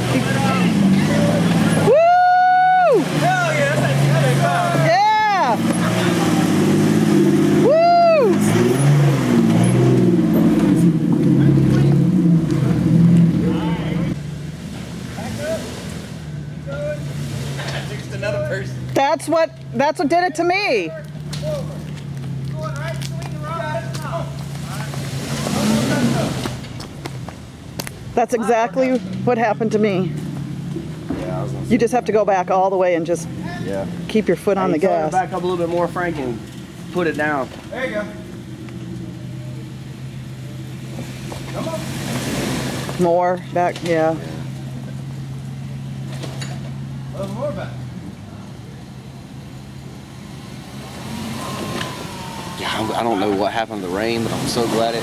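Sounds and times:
distant engine running at low revs: 0.0s - 19.8s, 35.2s - 55.0s
faint voices: 51.3s - 55.0s.

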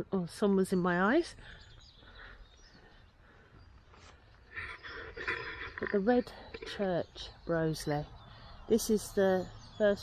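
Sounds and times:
faint bird chirps: 1.4s - 10.0s.

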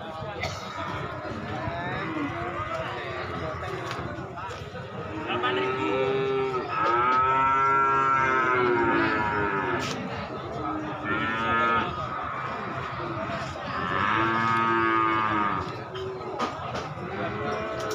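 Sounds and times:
cattle mooing: 5.3s - 9.8s, 13.7s - 15.7s.

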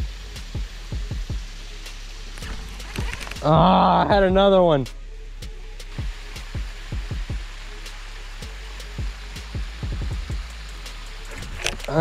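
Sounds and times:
water pouring over spillway: 0.1s - 3.7s.

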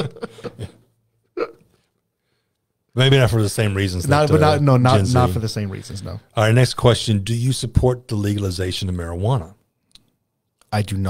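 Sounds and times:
man laughing: 0.0s - 0.8s, 4.1s - 6.2s
man chuckling: 0.0s - 1.7s.

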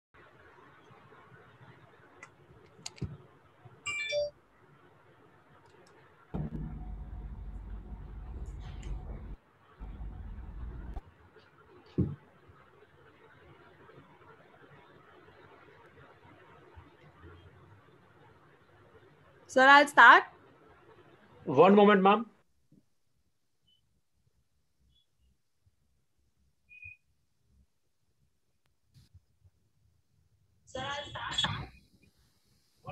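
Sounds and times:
low rumbling noise: 6.4s - 11.0s.

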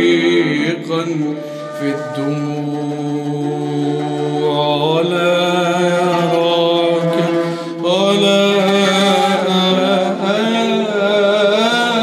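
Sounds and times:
man chanting religious song: 0.0s - 12.0s.

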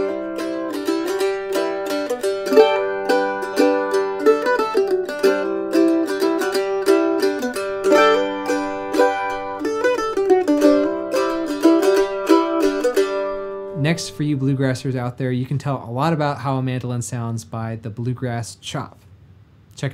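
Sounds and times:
mandolin strumming chords: 0.0s - 15.1s.

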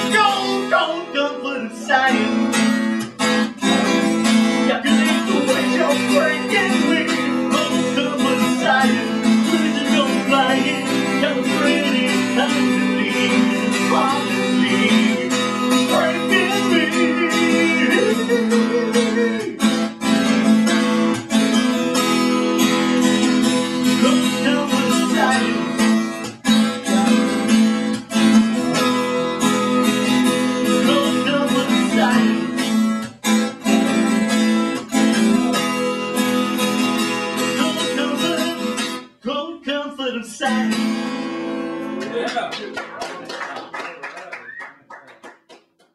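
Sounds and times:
acoustic guitars strumming: 0.0s - 43.6s.

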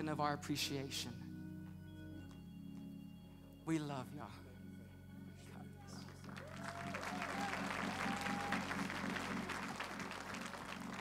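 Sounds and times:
soft church band music: 0.0s - 11.0s
congregation applauding: 5.9s - 11.0s.

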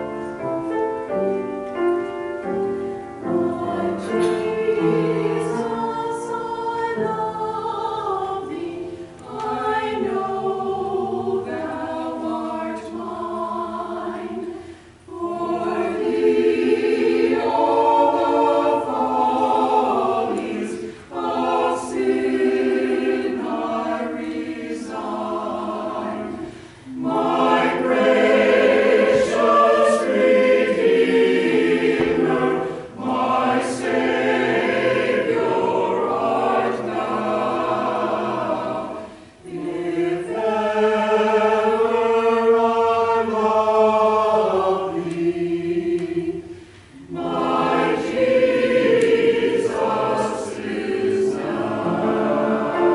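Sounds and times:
mixed choir singing: 2.6s - 52.9s.

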